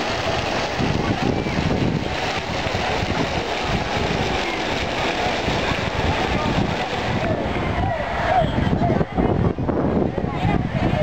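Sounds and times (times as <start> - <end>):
even background noise: 0.0 - 11.0
wind rumbling on microphone: 0.0 - 11.0.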